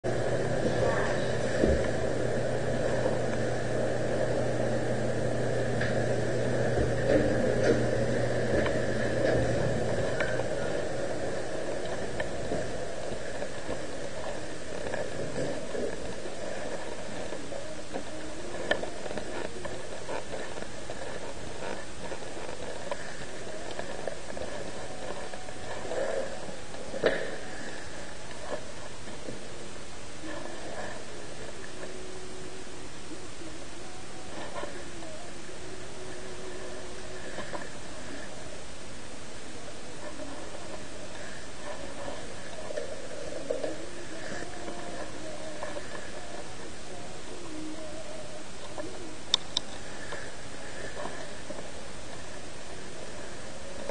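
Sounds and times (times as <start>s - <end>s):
elevator humming: 0.0s - 53.8s.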